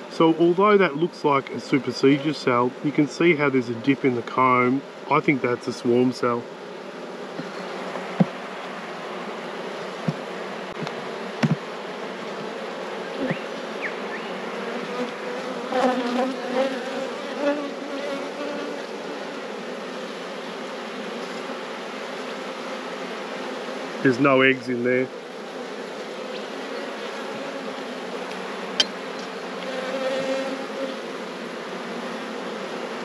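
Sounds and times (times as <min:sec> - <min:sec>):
honeybees humming: 0:00.0 - 0:33.0
sharp knocks: 0:07.3 - 0:08.4, 0:10.0 - 0:10.2, 0:10.8 - 0:11.7.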